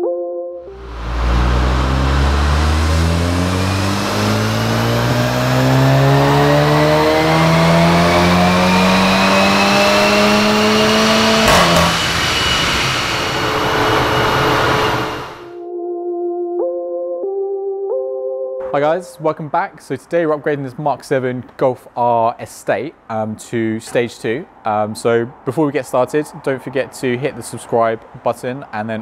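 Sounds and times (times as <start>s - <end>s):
car engine revving on a dyno: 0.7s - 15.5s
dyno rollers running: 0.7s - 15.6s.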